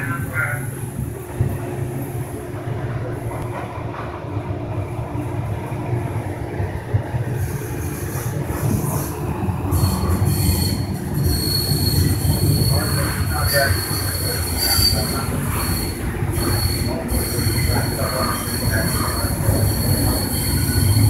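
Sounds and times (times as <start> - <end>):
train rumbling on track: 0.0 - 21.0
high-pitched train squeal: 7.4 - 21.0.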